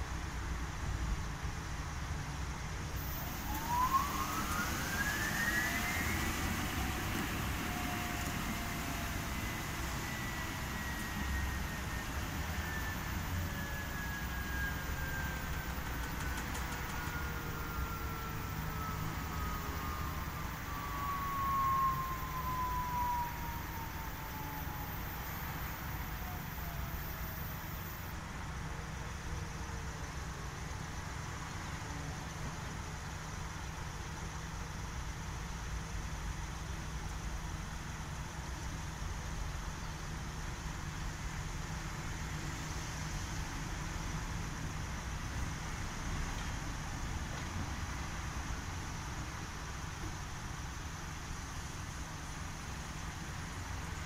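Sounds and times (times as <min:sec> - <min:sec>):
washing machine motor whine: 0:03.0 - 0:28.1.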